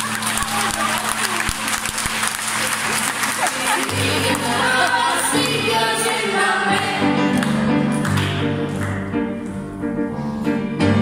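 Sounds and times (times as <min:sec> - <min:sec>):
digital piano: 0:03.6 - 0:11.0
children singing into microphones: 0:03.7 - 0:07.3.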